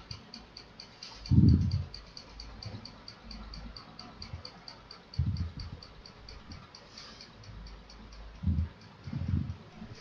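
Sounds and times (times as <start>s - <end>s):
faint high-pitched ticking: 0.0s - 10.0s.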